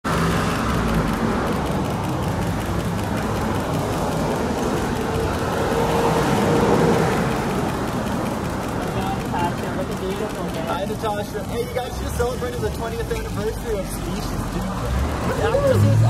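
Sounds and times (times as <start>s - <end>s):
cars passing: 0.0s - 16.0s
rumble of engines and tyres: 0.0s - 16.0s.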